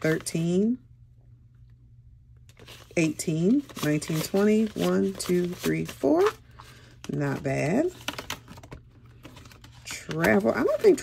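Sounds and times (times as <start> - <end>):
paper bills and vinyl envelopes rustling: 2.5 - 11.0.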